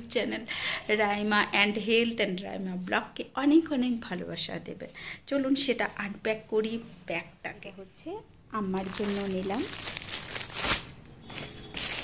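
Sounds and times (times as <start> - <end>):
plastic packaging crinkling: 8.6 - 12.0.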